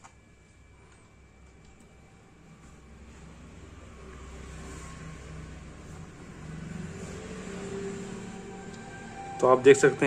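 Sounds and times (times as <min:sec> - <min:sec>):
projector fan and motor hum: 0:00.0 - 0:10.0.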